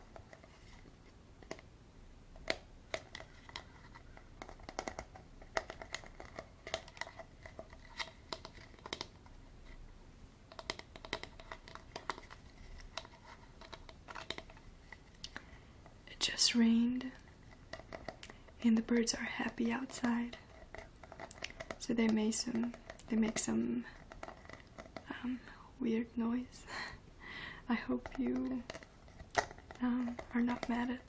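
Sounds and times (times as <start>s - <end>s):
fingernails tapping plastic bottle: 4.4s - 9.1s, 10.5s - 14.5s.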